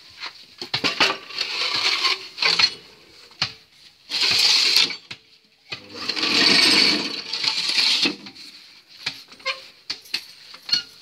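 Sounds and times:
brick mix scraping into metal mould: 0.7s - 3.0s, 5.7s - 8.4s.

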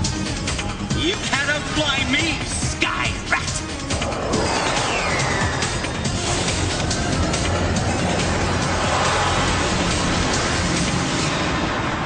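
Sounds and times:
action cartoon music: 0.0s - 12.0s.

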